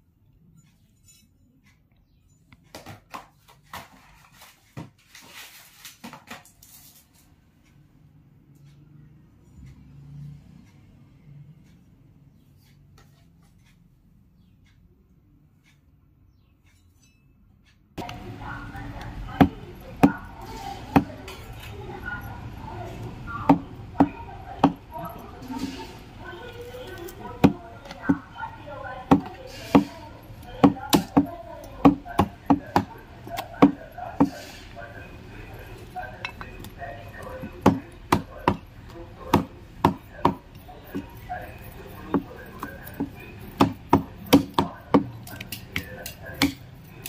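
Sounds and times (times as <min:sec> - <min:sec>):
plastic rustling: 0:03.6 - 0:07.3
cleaver chopping meat on wood: 0:23.4 - 0:25.2, 0:27.0 - 0:28.3, 0:29.1 - 0:30.0, 0:30.6 - 0:34.4, 0:37.4 - 0:41.2, 0:42.1 - 0:46.7.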